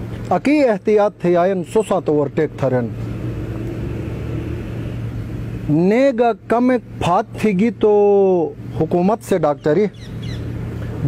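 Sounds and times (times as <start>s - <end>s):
constant hum: 0.0s - 11.0s.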